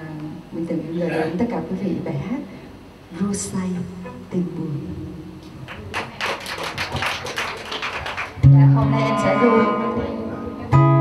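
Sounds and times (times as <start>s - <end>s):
audience clapping: 5.6s - 8.5s.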